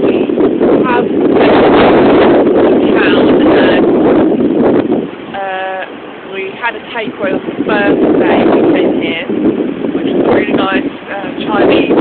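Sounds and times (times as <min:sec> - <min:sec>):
wind on microphone: 0:00.0 - 0:12.0.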